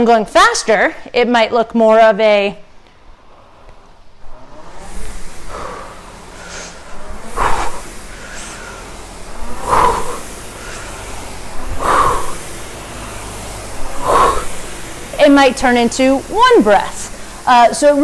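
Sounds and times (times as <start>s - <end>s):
rowing machine flywheel whooshing: 3.0s - 18.0s
person exhaling hard: 4.6s - 14.9s.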